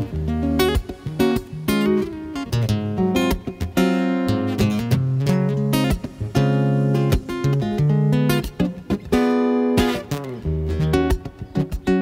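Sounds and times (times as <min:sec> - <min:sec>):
fingerstyle acoustic guitar: 0:00.0 - 0:12.0.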